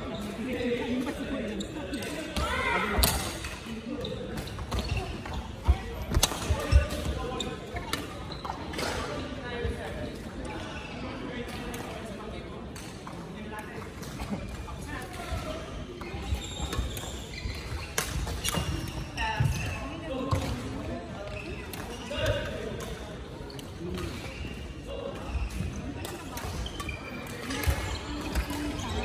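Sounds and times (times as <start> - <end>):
murmur of voices echoing: 0.0 - 29.0
shoe squeaks: 0.1 - 3.0, 3.9 - 9.0, 14.2 - 20.5, 21.1 - 22.5, 23.4 - 29.0.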